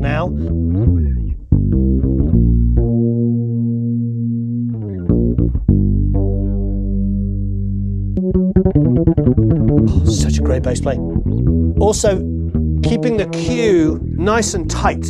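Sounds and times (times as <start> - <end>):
electric bass guitar notes: 0.0 - 15.0.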